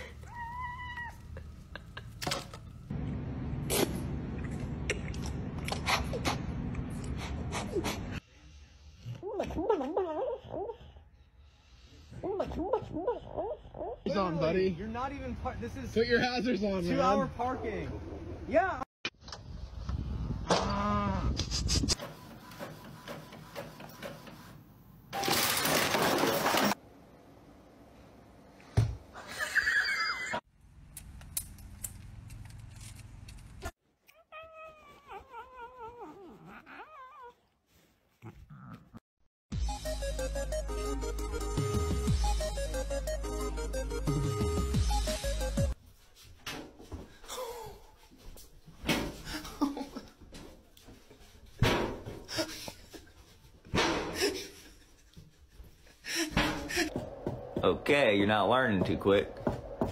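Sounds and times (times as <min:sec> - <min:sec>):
cat yowling: 0:00.2 - 0:01.4, 0:34.1 - 0:37.4.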